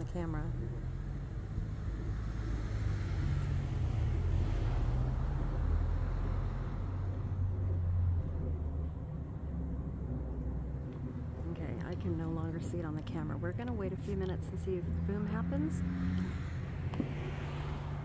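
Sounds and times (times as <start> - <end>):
jet aircraft rumble: 0.0 - 18.0.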